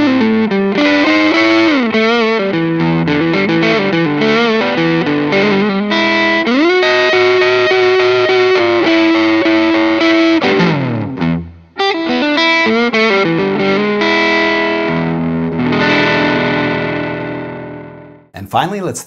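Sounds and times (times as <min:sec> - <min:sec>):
overdriven electric guitar lead: 0:00.0 - 0:18.3.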